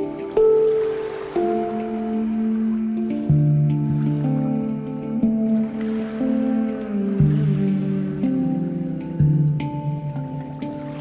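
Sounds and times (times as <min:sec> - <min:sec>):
deep bass handpan note: 0:00.0 - 0:11.0
handpan notes ringing: 0:00.0 - 0:11.0.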